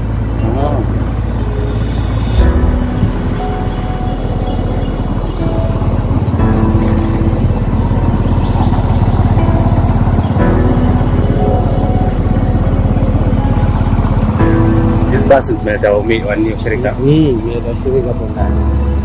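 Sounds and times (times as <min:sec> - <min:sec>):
music playing: 0:00.0 - 0:19.0
vehicle engine rumbling: 0:00.0 - 0:19.0.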